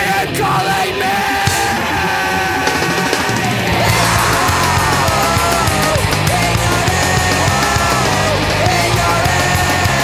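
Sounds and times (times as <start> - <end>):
fast punk rock song: 0.0 - 10.0
shouted vocal: 0.0 - 10.0.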